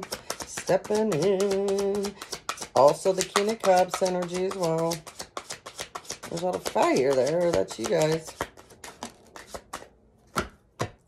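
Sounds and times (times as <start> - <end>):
cards being shuffled: 0.0 - 10.5.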